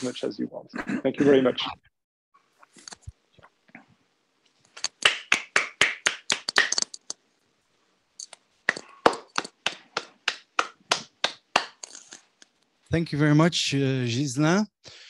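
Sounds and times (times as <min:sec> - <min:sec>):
hands clapping: 0:04.8 - 0:07.2, 0:08.7 - 0:12.1.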